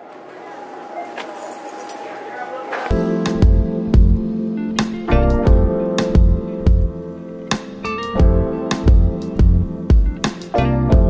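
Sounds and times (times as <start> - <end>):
shop background noise: 0.0 - 3.0.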